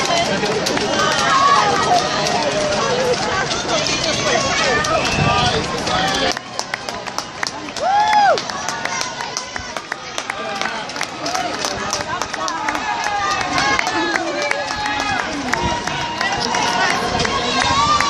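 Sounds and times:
crowd cheering and calling out: 0.0 - 18.0
running footsteps on road: 0.0 - 18.0.

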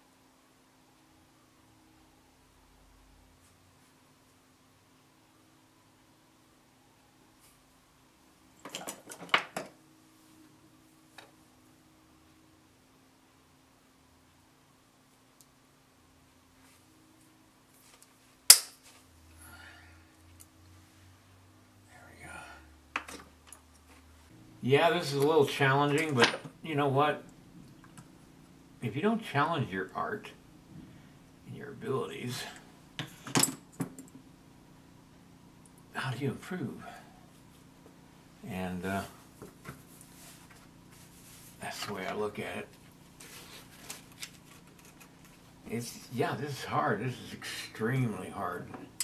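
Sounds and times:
faint steady hum: 0.0 - 49.0.

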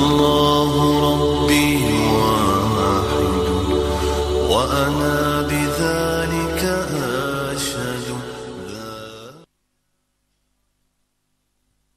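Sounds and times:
low steady drone: 0.0 - 8.9
voices singing long note: 0.0 - 9.5.

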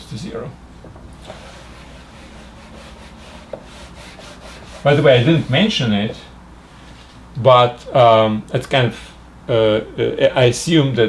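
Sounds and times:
eraser rubbing on whiteboard: 1.2 - 5.8.

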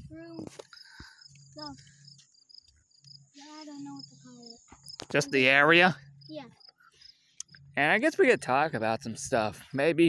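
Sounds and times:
crickets chirping: 0.6 - 7.7.

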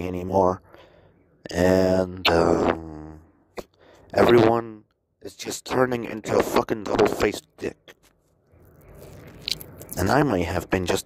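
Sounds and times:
man breathing softly: 0.6 - 1.4, 3.7 - 4.1.

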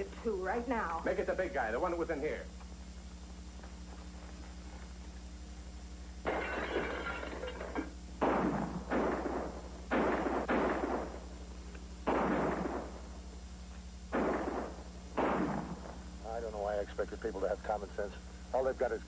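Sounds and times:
gunshots with echo: 8.2 - 11.2, 12.0 - 13.0, 14.1 - 16.0.

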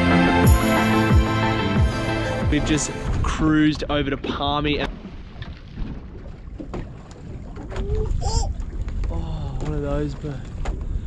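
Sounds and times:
wind rumbling on microphone: 3.0 - 11.0.

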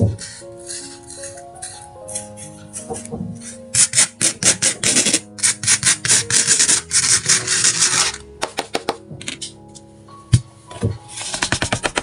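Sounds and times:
spoon scraping sand: 0.0 - 8.2.

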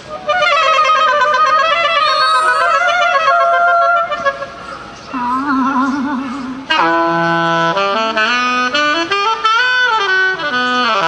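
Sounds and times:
saxophone playing: 0.3 - 4.5, 6.7 - 11.0.

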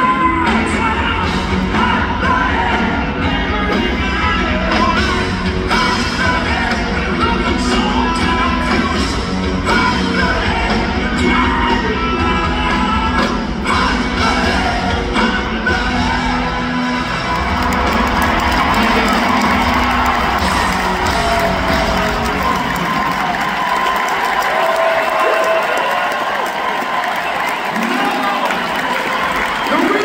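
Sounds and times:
live rock band: 0.0 - 30.0
crowd cheering and whooping: 14.4 - 30.0.

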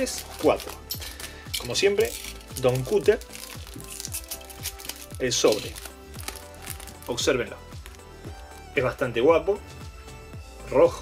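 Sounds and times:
foil pack crinkling: 0.0 - 8.2
background music: 0.0 - 11.0.

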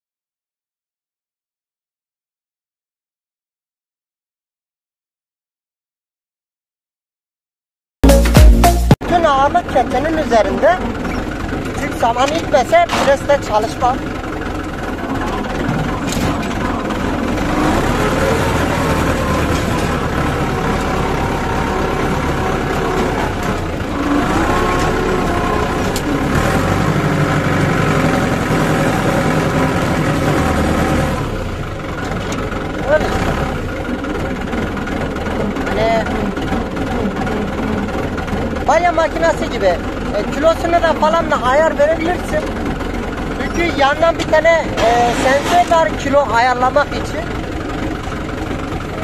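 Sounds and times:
tractor engine under load: 9.0 - 49.0.

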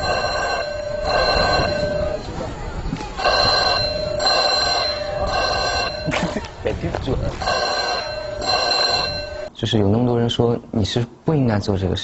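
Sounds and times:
ringing bell-like tones: 0.0 - 6.4, 7.4 - 9.5.

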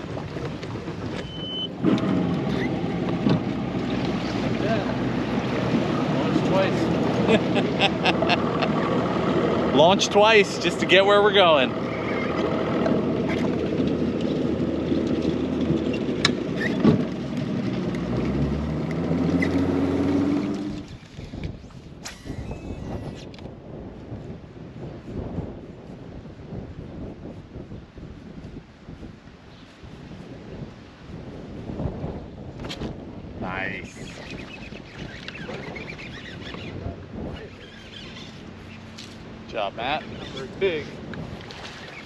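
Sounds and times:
water lapping around boat: 0.0 - 23.1, 34.0 - 42.0
outboard motor running: 0.0 - 23.2, 33.8 - 42.0
wind on microphone: 0.0 - 42.0.

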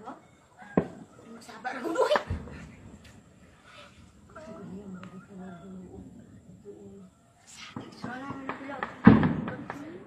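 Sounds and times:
outdoor background noise: 0.0 - 10.0
gunshot with rolling echo: 8.2 - 10.0.

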